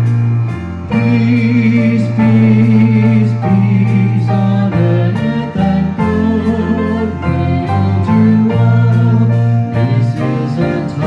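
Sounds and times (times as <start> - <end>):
bass guitar: 0.0 - 11.0
drums keeping a steady beat: 0.0 - 11.0
guitar: 0.0 - 11.0
people singing: 0.9 - 11.0.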